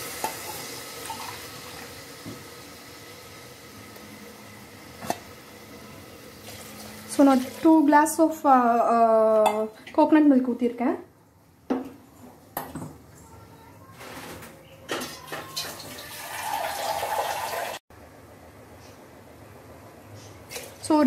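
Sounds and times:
liquid pouring and splashing: 6.4 - 7.8, 15.0 - 17.8.

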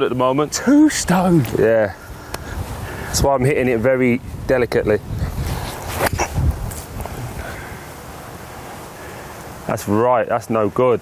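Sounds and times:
wind rumble on microphone: 1.4 - 7.9.

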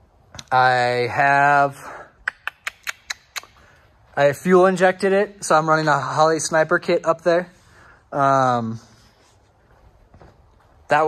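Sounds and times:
sharp clicks: 2.2 - 3.7.

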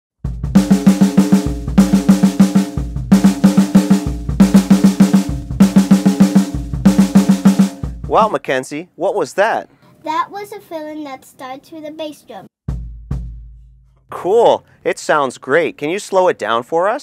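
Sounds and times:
bass drum kick: 0.2 - 8.4, 12.7 - 14.3
drum kit fill: 0.2 - 8.4, 12.7 - 14.6.

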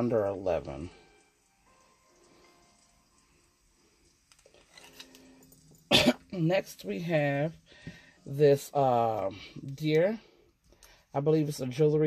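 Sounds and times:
faint steady tones: 0.0 - 11.4.

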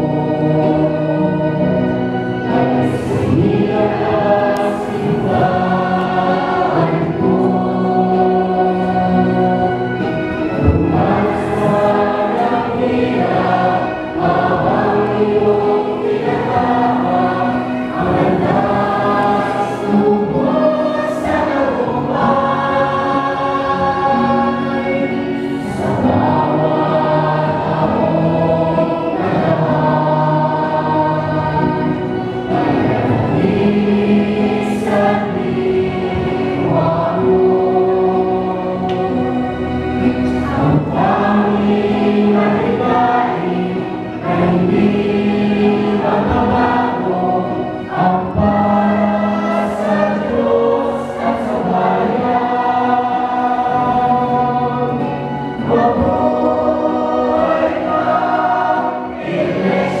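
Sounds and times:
choir singing a hymn: 0.0 - 60.0.

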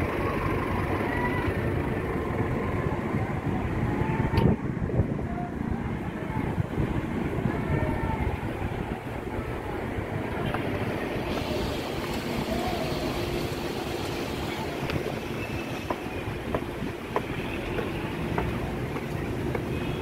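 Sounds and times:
faint engine hum: 0.0 - 20.0
traffic rumble: 0.0 - 20.0.

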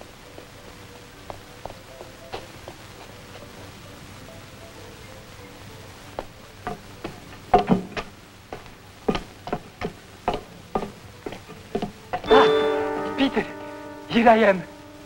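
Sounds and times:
footsteps on hard floor: 1.2 - 3.7, 6.2 - 12.3
held film music chord: 12.2 - 15.0.

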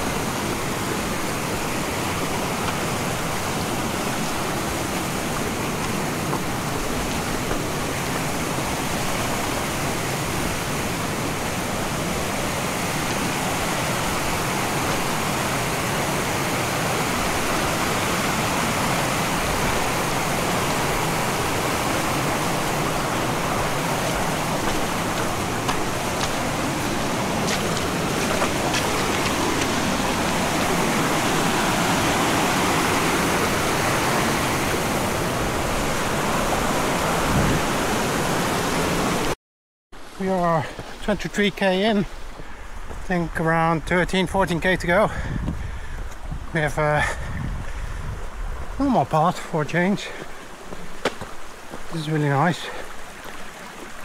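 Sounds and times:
stream rushing over rocks: 0.0 - 39.4, 40.0 - 54.0.

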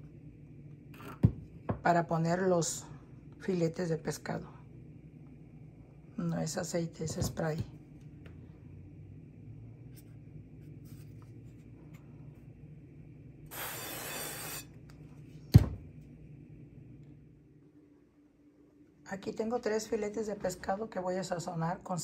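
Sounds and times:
low steady hum: 0.0 - 22.0
cooking spray hissing: 13.5 - 14.7.

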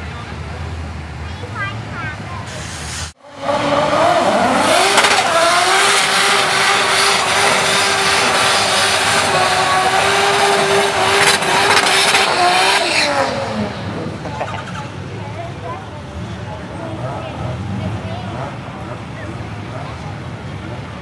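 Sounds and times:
car engine revving: 3.0 - 21.0
tyres spinning and squealing: 3.2 - 15.6.

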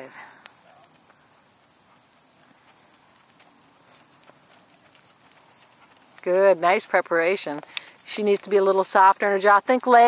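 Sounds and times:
hoofbeats on sand: 0.6 - 9.1.

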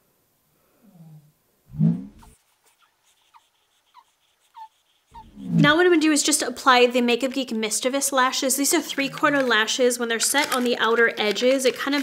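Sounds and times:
dog whining: 2.0 - 5.7.

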